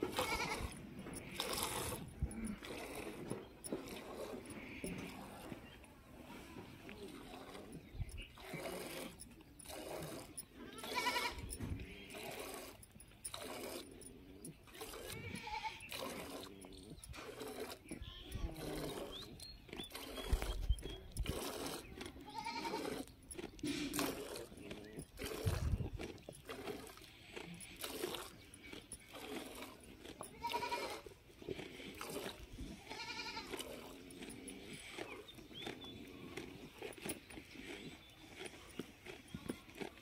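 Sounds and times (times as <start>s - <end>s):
goats bleating: 0.0s - 5.2s, 8.4s - 12.6s, 14.9s - 16.3s, 17.8s - 18.9s, 21.9s - 23.1s, 30.2s - 31.1s, 32.6s - 33.8s.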